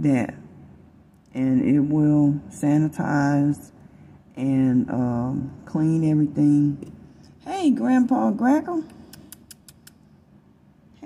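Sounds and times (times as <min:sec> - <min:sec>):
sharp high clicks: 0:09.0 - 0:10.0.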